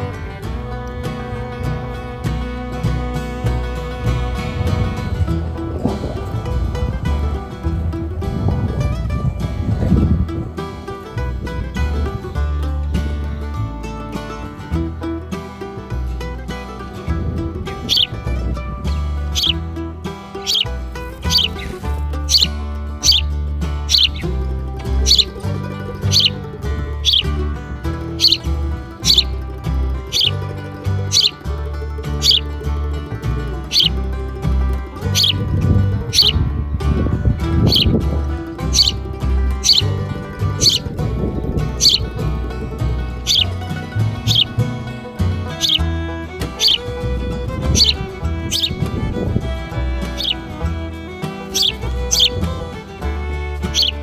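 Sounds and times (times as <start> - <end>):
background music: 0.0 - 54.0
bird fledgling begging chirps: 17.8 - 18.3, 18.9 - 19.6, 20.4 - 24.3, 25.0 - 27.4, 28.0 - 30.4, 31.0 - 31.4, 32.2 - 32.5, 33.6 - 34.0, 35.1 - 36.5, 37.6 - 42.2, 43.2 - 44.6, 45.5 - 52.6, 53.6 - 54.0.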